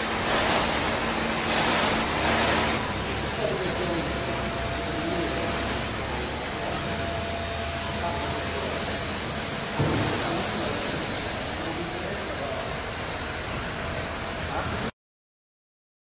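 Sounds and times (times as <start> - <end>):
hiss-like workshop noise: 0.0 - 15.0
thump: 9.8 - 10.4.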